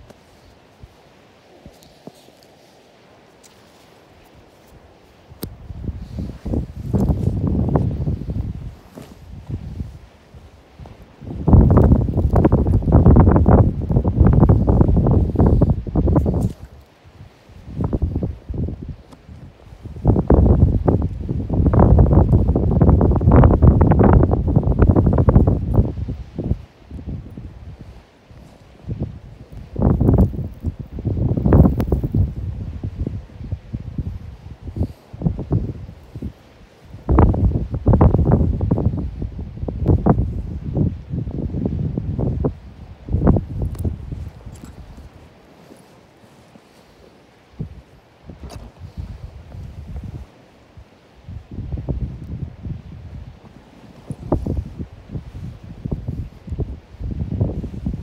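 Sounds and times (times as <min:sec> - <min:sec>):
wind buffeting microphone: 0:03.7 - 0:58.0.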